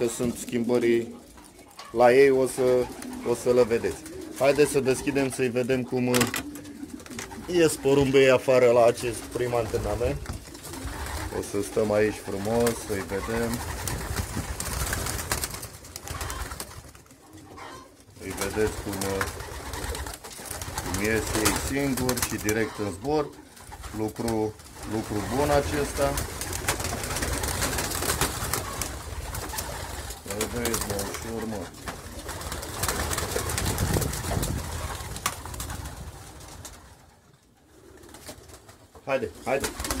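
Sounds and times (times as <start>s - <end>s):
pigeons cooing: 0.0s - 40.0s
pigeon wings flapping: 2.4s - 17.4s, 18.2s - 37.2s, 37.8s - 40.0s.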